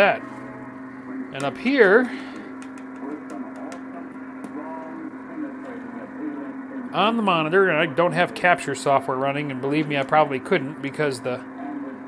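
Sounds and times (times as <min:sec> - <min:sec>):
faint muffled radio voice: 0:00.0 - 0:12.0
steady low tone: 0:00.0 - 0:12.0.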